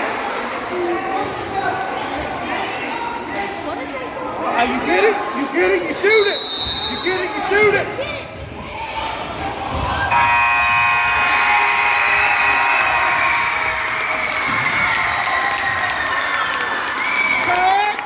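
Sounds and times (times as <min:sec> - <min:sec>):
short high whistle: 0:06.2 - 0:07.1
crowd cheering: 0:09.7 - 0:18.0
scoreboard horn: 0:10.1 - 0:11.6.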